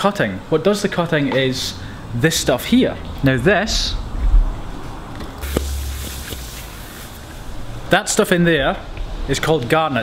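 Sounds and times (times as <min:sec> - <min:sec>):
faint hiss: 0:05.4 - 0:10.0.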